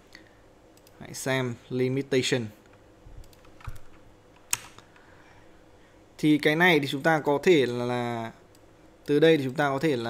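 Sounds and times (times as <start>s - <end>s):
computer keyboard and mouse clicks: 2.6s - 5.1s.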